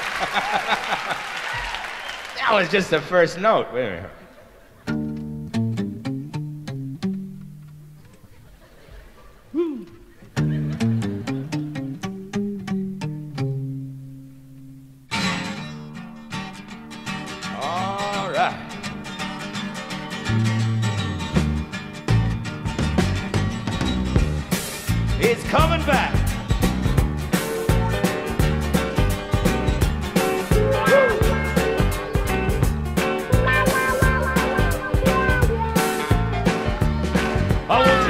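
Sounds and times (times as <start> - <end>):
full band playing loudly: 27.0 - 38.0
guitar solo: 30.2 - 36.4, 37.6 - 38.0.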